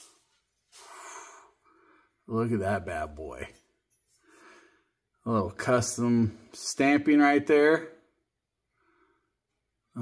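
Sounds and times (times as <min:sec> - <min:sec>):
breath out through the nose: 0:00.7 - 0:02.0.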